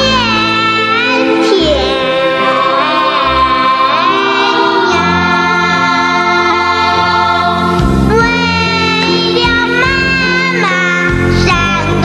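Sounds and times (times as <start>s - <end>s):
child singing: 0.0s - 12.0s
instrumental accompaniment: 0.0s - 12.0s.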